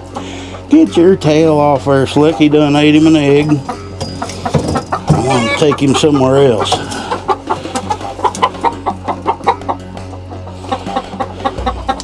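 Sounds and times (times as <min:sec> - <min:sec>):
hens cackling in alarm: 0:00.0 - 0:12.0.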